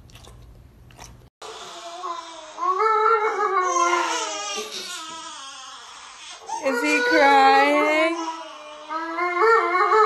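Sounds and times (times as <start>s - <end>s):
newborn baby crying: 1.4s - 10.0s.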